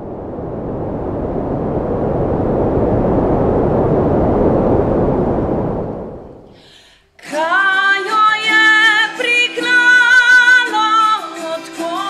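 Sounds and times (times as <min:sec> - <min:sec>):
loud rushing whoosh: 0:00.0 - 0:06.6.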